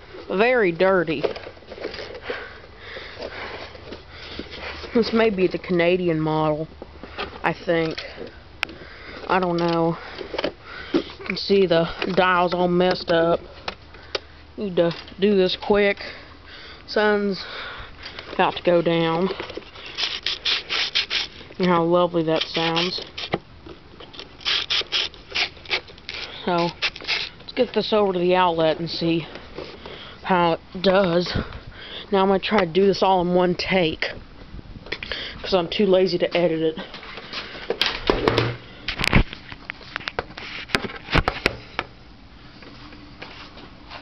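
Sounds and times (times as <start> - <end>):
radio knob scraping: 22.4 - 23.4.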